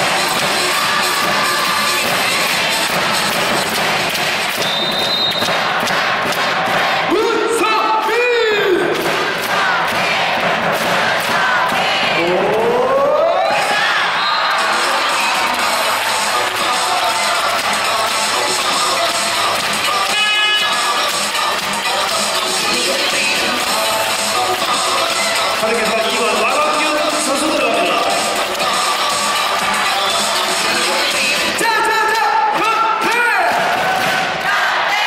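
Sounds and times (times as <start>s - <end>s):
crowd cheering and shouting: 0.0s - 35.0s
music: 0.0s - 35.0s
long rising crowd shout: 12.8s - 19.3s.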